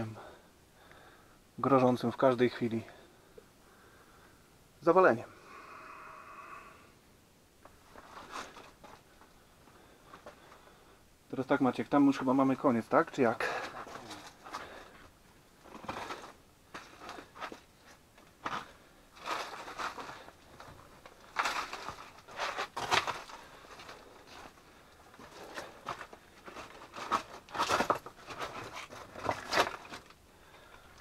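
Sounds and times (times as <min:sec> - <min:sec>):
footsteps crunching on rock rubble: 0:13.4 - 0:30.8
stones clattering underfoot: 0:15.6 - 0:24.6, 0:25.2 - 0:31.0.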